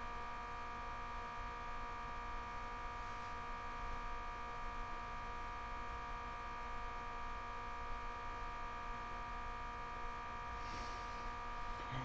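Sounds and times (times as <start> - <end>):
electrical buzzing hum: 0.0 - 12.0.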